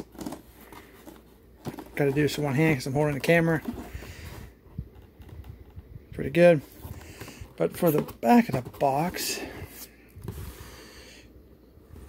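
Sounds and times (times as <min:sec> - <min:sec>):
cardboard box rustling: 0:00.0 - 0:05.4, 0:06.5 - 0:10.6
low room hum: 0:00.0 - 0:12.0.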